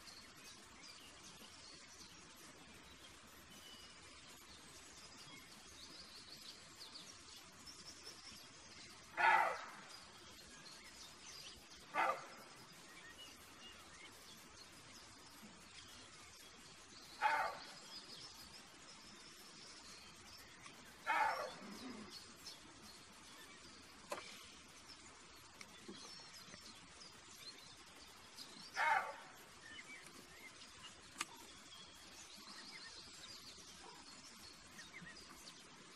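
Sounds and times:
faint birdsong: 0:00.0 - 0:35.9
deer barking: 0:09.2 - 0:09.9, 0:11.9 - 0:12.4, 0:17.2 - 0:17.7, 0:21.0 - 0:22.1, 0:28.8 - 0:29.4.

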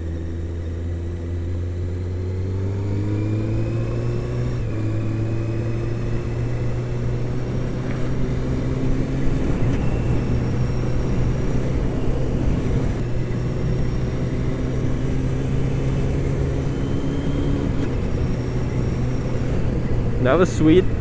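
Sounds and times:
motorcycle engine accelerating: 0:00.0 - 0:21.0.

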